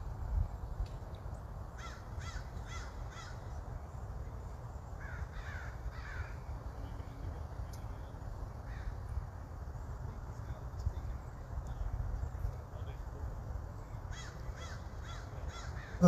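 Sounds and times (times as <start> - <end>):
crow cawing: 1.8 - 3.4, 5.0 - 6.4, 14.1 - 16.0.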